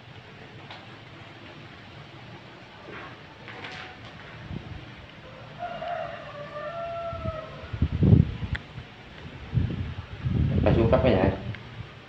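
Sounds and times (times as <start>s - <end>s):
footsteps: 2.8s - 4.6s.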